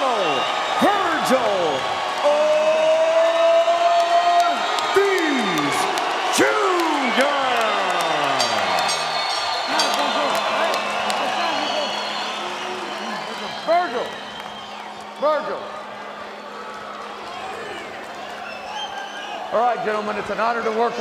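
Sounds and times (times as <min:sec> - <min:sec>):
arena crowd cheering: 0:00.0 - 0:21.0.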